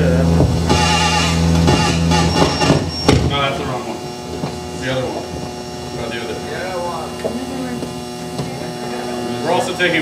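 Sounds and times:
electrical hum: 0:00.0 - 0:10.0
faint voices: 0:04.8 - 0:10.0.

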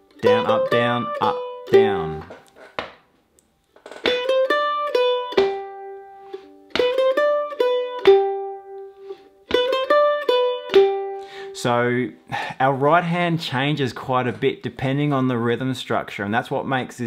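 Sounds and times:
mandolin playing a jig: 0:00.0 - 0:02.9, 0:03.9 - 0:15.5.

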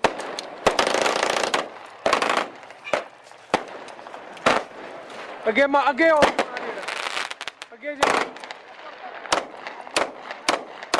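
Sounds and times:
sharp explosive bangs: 0:00.0 - 0:10.9.

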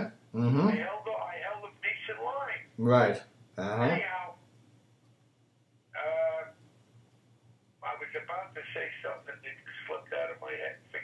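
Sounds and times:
men talking over telephone: 0:00.0 - 0:04.3, 0:06.0 - 0:06.6, 0:07.8 - 0:11.0.

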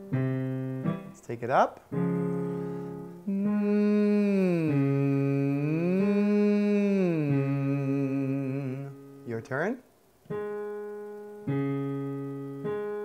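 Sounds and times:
man singing vocal exercise: 0:03.2 - 0:09.4.

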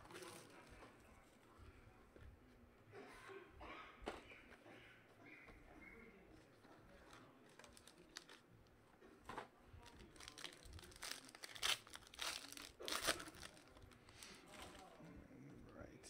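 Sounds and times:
foil wrapper tearing and crinkling: 0:07.4 - 0:08.4, 0:09.8 - 0:15.0.

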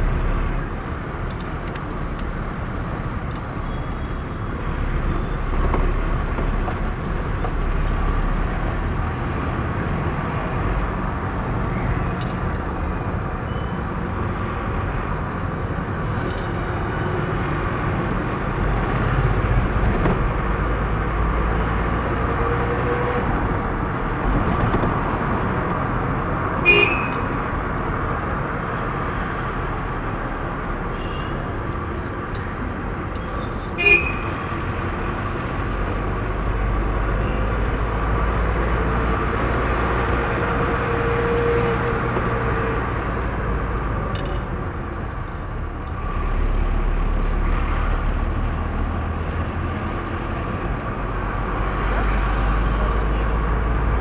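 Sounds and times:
engine and road noise inside vehicle: 0:00.0 - 0:54.0
car horn toots: 0:26.6 - 0:27.2, 0:33.8 - 0:34.2.

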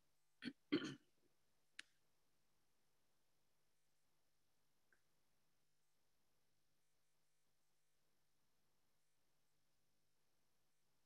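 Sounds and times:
person clearing throat: 0:00.4 - 0:01.1.

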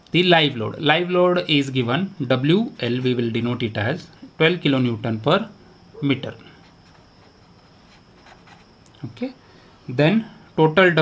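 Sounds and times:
marker pen scratching on paper: 0:06.6 - 0:08.7.

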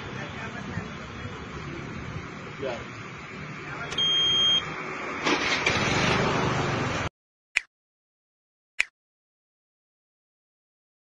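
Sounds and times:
street noise: 0:00.0 - 0:07.1
loud high-pitched electronic beep: 0:04.0 - 0:04.7.

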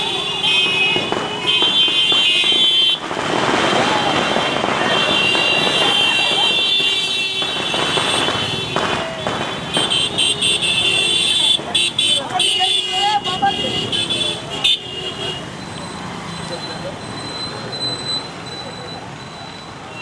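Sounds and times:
motorcycle horns honking: 0:00.0 - 0:15.6
motorcycle engines: 0:00.0 - 0:20.0
road noise: 0:00.0 - 0:20.0.

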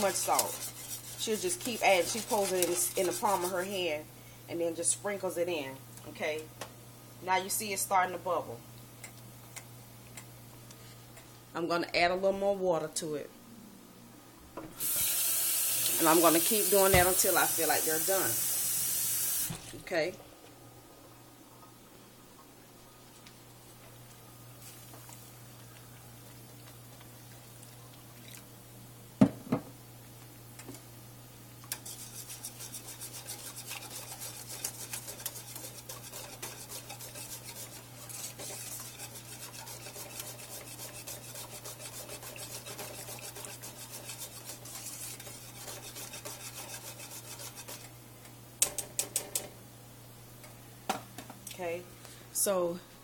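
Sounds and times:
utensil scraping metal pot: 0:00.0 - 0:04.0, 0:31.6 - 0:47.9.

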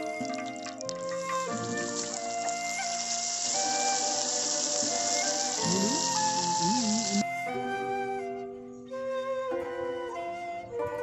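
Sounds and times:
background music held notes: 0:00.0 - 0:11.0
oil sizzling on a griddle: 0:01.0 - 0:07.2.

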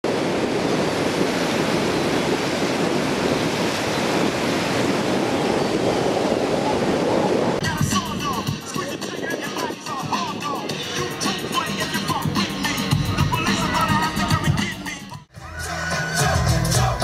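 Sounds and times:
surf-like rushing noise: 0:00.0 - 0:14.8.

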